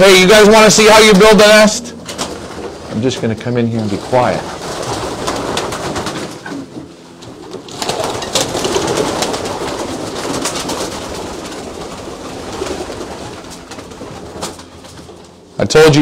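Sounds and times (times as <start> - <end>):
pigeons cooing: 1.8 - 15.5.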